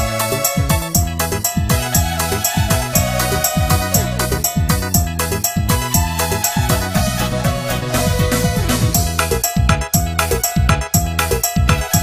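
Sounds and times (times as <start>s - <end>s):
held keyboard chords: 0.0s - 12.0s
instrumental keyboard backing music: 0.0s - 12.0s.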